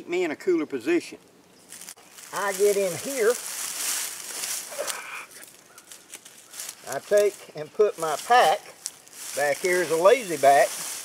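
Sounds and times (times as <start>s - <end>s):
dry leaves crackling: 1.5s - 11.0s.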